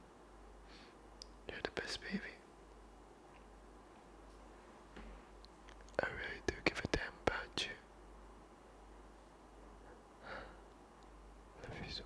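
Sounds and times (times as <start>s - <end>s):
man whispering: 1.5s - 2.5s, 5.9s - 7.9s, 11.6s - 12.0s.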